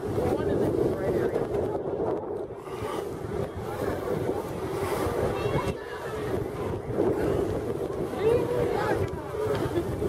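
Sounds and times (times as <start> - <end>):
outdoor noise: 0.0 - 10.0
wind rumbling on microphone: 0.0 - 10.0.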